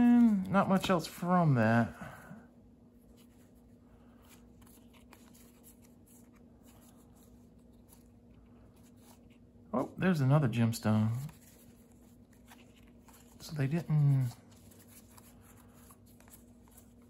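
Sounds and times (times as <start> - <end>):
person saying oh: 0.0 - 0.6
low steady hum: 0.0 - 17.0
cards rustling and sliding: 3.0 - 17.0.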